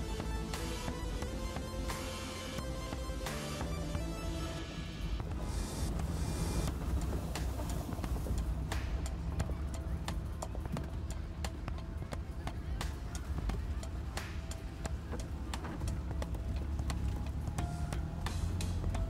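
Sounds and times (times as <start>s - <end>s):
engine and road rumble: 0.0s - 19.0s
music playing: 0.0s - 19.0s
vehicle knocks and rattles: 6.0s - 19.0s.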